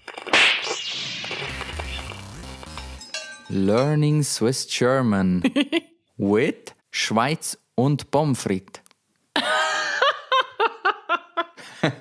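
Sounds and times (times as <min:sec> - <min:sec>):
whip-crack whoosh effect: 0:00.3 - 0:02.2.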